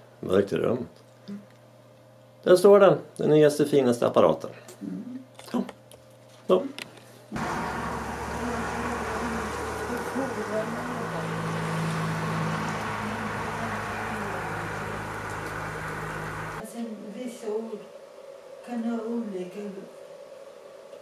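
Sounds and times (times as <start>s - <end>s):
low mechanical hum: 0.0s - 21.0s.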